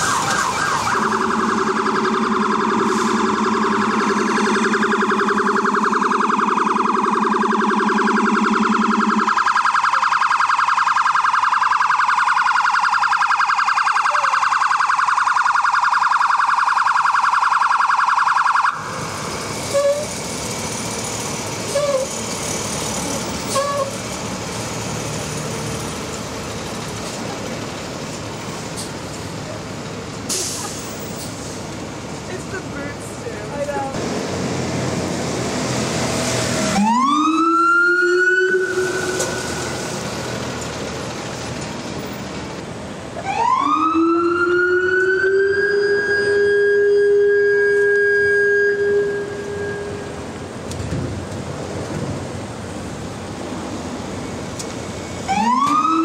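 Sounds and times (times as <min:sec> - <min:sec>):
short siren chirps: 0:00.0 - 0:19.0, 0:36.8 - 0:39.8, 0:43.4 - 0:50.2
electronic siren warbling: 0:00.0 - 0:20.1, 0:36.7 - 0:39.8, 0:43.2 - 0:50.2, 0:55.3 - 0:56.0
traffic on wet street: 0:00.0 - 0:56.0
low horn blaring: 0:46.0 - 0:50.2.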